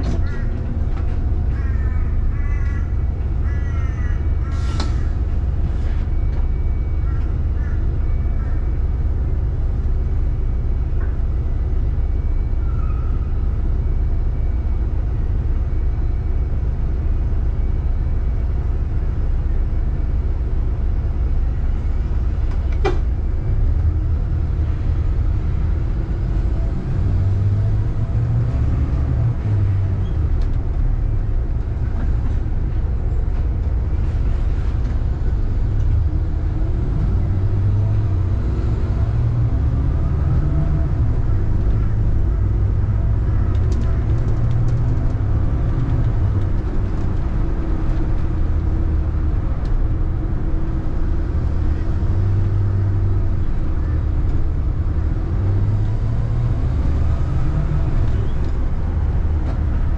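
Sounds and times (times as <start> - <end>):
vehicle engine and road rumble: 0.0 - 59.9.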